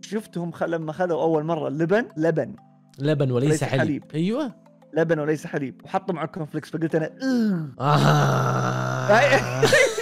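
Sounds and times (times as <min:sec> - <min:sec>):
man groaning: 0:07.2 - 0:10.0.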